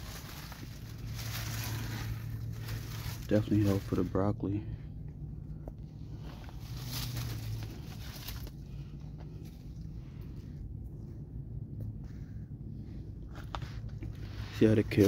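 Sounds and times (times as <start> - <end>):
soft rustles: 0.0 - 4.2, 5.4 - 15.0
low steady rumble: 0.0 - 15.0.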